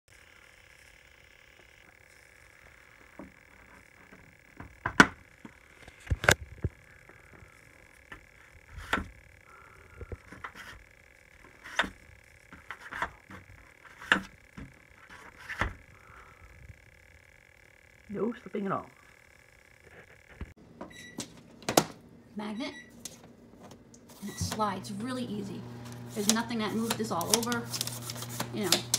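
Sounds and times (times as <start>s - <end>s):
faint steady hum: 0.1s - 28.9s.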